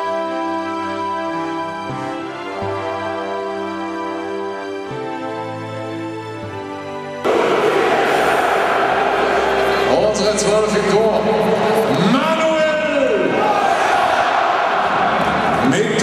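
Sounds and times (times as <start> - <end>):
stadium crowd: 7.2 - 16.0
announcer echoing over loudspeakers: 9.6 - 13.4.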